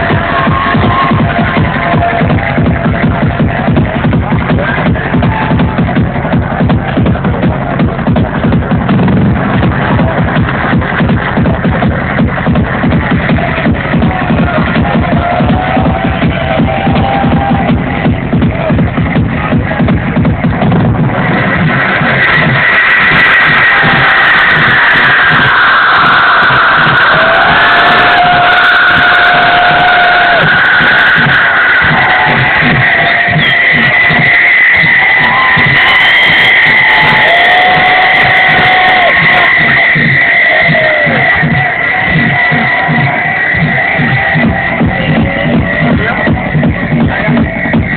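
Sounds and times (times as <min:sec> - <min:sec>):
loud electronic dance music: 0:00.0 - 0:47.9.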